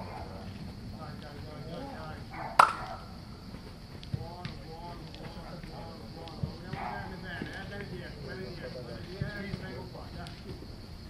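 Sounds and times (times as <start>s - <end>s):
people talking and calling out: 0.0s - 11.0s
sharp smack: 2.6s - 2.9s.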